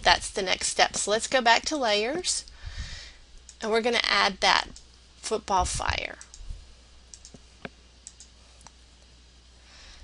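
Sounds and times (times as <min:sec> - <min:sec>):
faint steady low hum: 0:00.0 - 0:10.0.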